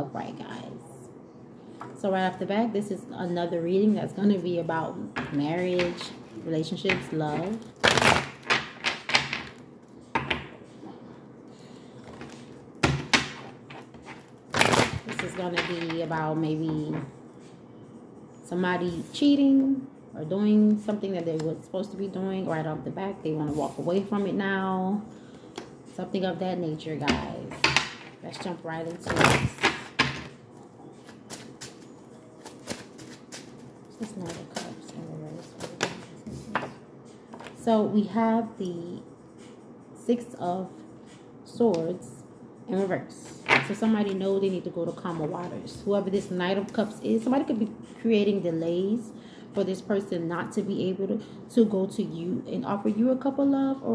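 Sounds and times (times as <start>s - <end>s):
cards being shuffled: 31.0s - 34.7s.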